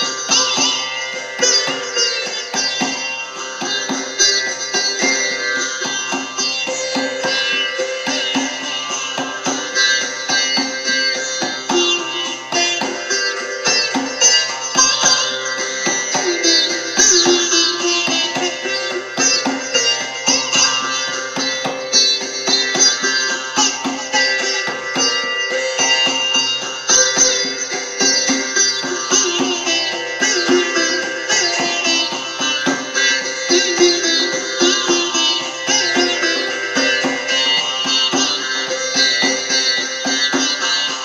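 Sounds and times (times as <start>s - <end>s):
sitar drone: 0.0s - 41.0s
sitar plucked notes: 0.0s - 41.0s.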